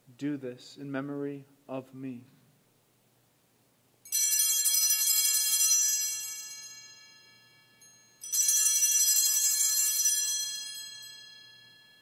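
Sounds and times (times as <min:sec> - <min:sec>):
small bells jangling: 0:04.0 - 0:12.0.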